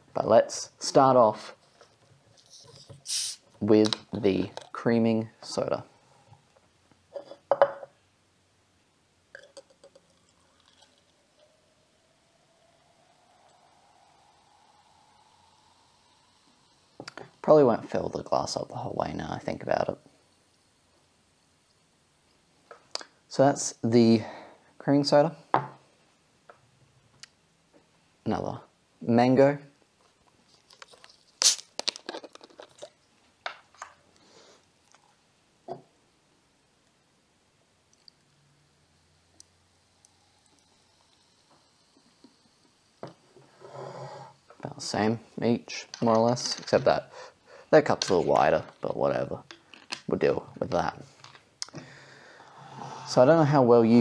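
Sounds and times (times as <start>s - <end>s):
gas hissing from soda bottle: 2.5s - 3.5s, 13.2s - 17.5s, 31.4s - 31.6s
fizzing pour rising in pitch: 9.8s - 18.2s.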